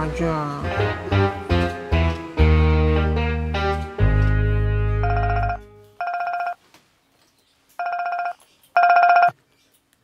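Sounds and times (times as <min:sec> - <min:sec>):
phone ringtone: 0:05.0 - 0:06.6, 0:07.8 - 0:09.4.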